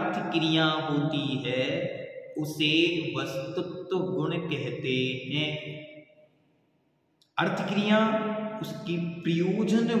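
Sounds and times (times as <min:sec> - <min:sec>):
man chanting: 0:00.0 - 0:05.9, 0:07.4 - 0:10.0.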